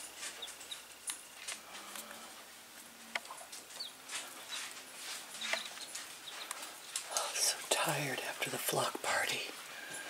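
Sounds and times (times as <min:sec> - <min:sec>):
chicks peeping: 0:00.1 - 0:02.5, 0:03.2 - 0:07.7.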